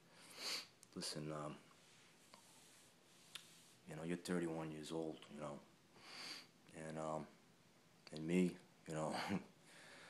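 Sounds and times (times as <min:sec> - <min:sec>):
man sniffing sharply: 0:00.2 - 0:00.8.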